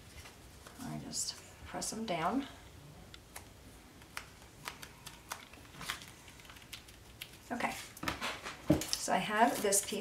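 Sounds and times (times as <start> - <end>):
paper handling: 3.3 - 10.0.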